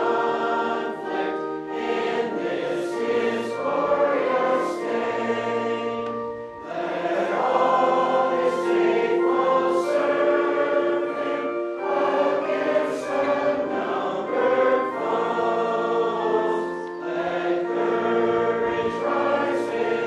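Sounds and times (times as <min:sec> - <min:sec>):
congregation singing a hymn: 0:00.0 - 0:20.0.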